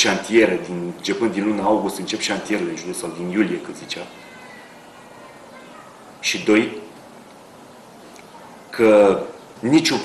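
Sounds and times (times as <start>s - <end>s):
low room noise: 0.0s - 10.0s
faint thin whining tones: 3.2s - 9.6s.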